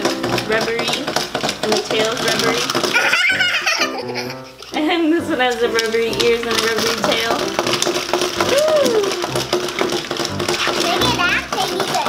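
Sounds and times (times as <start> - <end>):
toy mechanism clicks: 0.0 - 4.8, 5.4 - 12.0.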